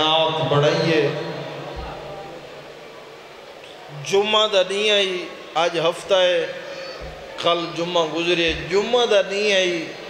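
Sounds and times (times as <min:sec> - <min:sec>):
man speaking through loudspeakers: 0:00.0 - 0:02.5, 0:03.9 - 0:10.0
low steady background hiss: 0:00.0 - 0:10.0.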